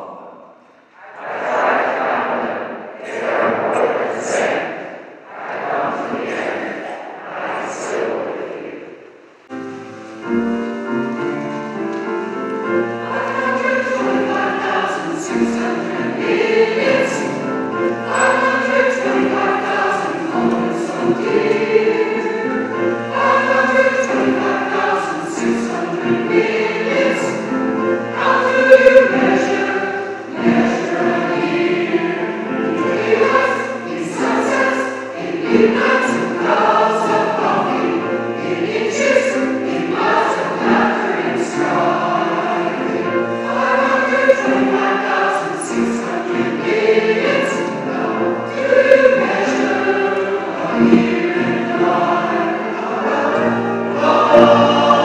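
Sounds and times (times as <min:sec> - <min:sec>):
mixed choir singing in parts: 0:00.0 - 0:10.5, 0:11.1 - 0:55.0.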